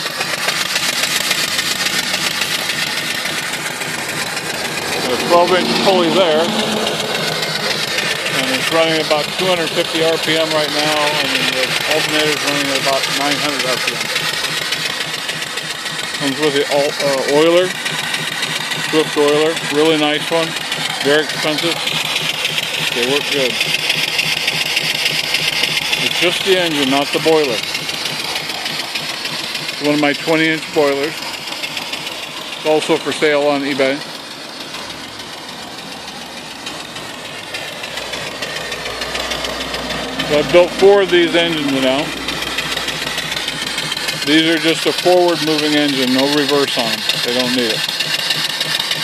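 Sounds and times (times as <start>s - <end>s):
steam engine running: 0.0s - 49.0s
low hum: 1.2s - 13.2s, 34.6s - 44.6s.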